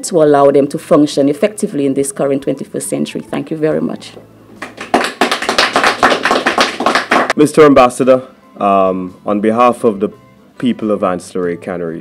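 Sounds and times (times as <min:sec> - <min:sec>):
audience applauding: 0:04.6 - 0:07.4.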